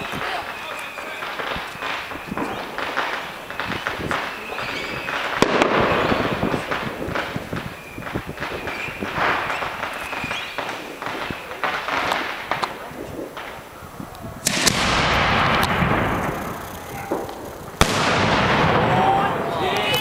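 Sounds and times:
firework mortar launch: 0:00.0 - 0:20.0
long rolling echo: 0:00.0 - 0:20.0
firework shell bang: 0:14.4 - 0:16.3, 0:17.0 - 0:19.0.

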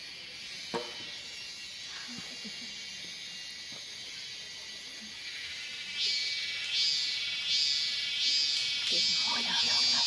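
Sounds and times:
shrill insect chorus: 0:00.0 - 0:10.0.

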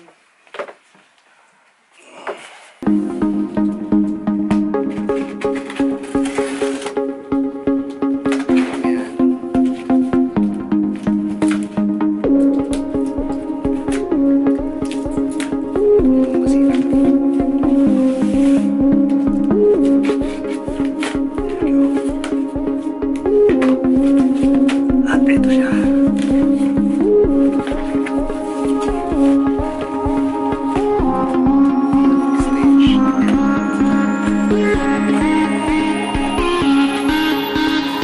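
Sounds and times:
background music with beat: 0:02.8 - 0:38.0.

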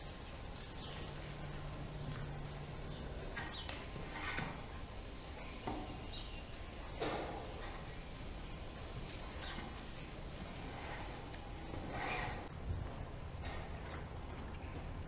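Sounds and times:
low barn rumble: 0:00.0 - 0:15.0.

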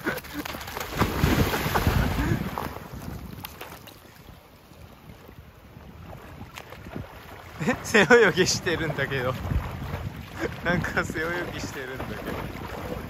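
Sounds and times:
water sloshing: 0:00.0 - 0:13.0
loud splash of water: 0:00.3 - 0:03.9.

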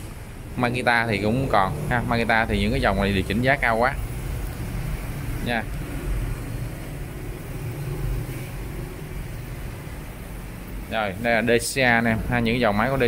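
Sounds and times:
low background hum and rumble: 0:00.0 - 0:13.0.

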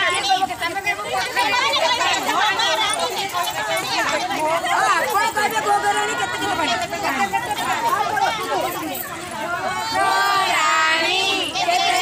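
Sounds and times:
women talking and calling out: 0:00.0 - 0:12.0.

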